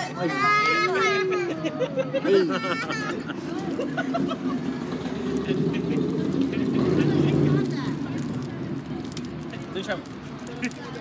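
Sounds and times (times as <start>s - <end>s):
passing vehicle rumble: 1.2s - 11.0s.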